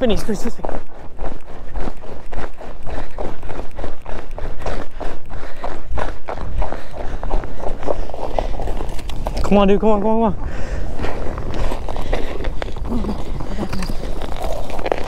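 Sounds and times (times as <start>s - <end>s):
boots running over snow: 0.0s - 15.0s.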